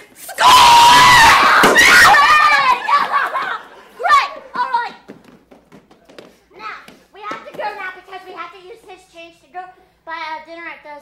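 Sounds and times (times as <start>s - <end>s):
high-pitched screaming voices: 0.2s - 2.8s.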